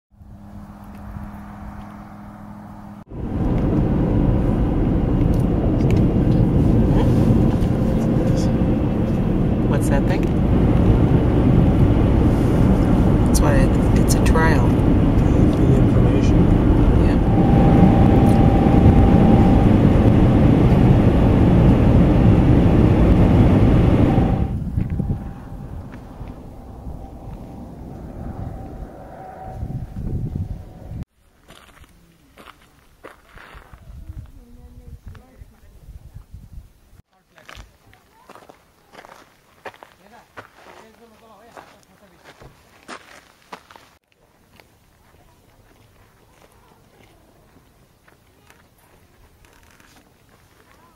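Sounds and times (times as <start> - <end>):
car road and engine noise: 0.1 - 31.1
footsteps on gravel: 31.4 - 33.9, 37.3 - 50.9.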